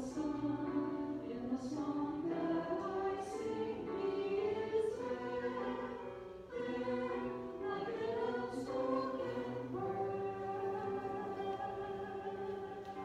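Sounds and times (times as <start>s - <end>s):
choir singing slowly: 0.0s - 13.0s.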